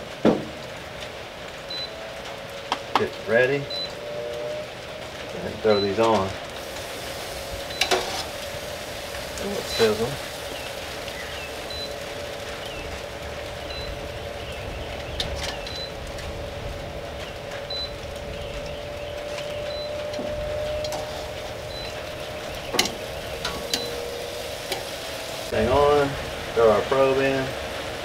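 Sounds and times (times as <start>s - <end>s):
fan humming: 0.0s - 28.0s
chicken sizzling on grill grates: 0.9s - 28.0s.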